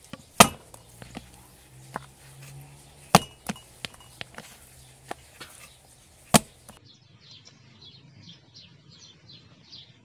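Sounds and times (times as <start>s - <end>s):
dough slapped against plastic bowl: 3.0s - 6.8s.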